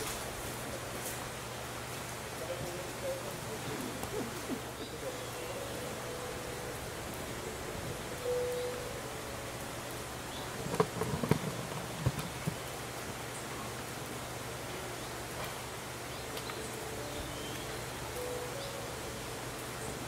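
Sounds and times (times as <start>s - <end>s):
steady buzzing hum: 0.0s - 20.0s
sharp knocks and thumps: 10.6s - 12.7s.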